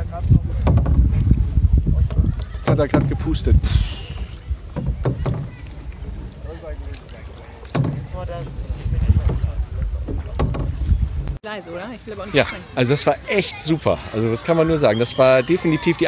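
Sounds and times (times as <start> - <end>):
wind buffeting microphone: 0.0 - 11.4
faint voices: 1.4 - 16.0.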